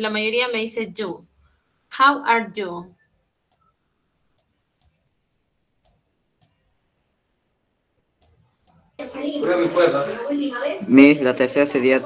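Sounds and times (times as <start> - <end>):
computer mouse clicking: 8.2 - 8.9.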